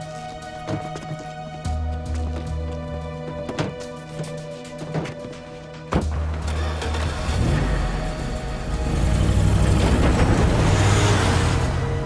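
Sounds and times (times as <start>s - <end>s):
background score music: 0.0s - 12.0s
road noise: 6.1s - 12.0s
van engine accelerating past: 7.2s - 12.0s.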